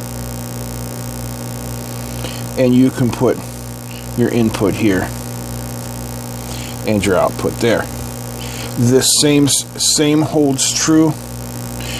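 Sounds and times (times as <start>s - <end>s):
electrical mains hum: 0.0s - 11.9s.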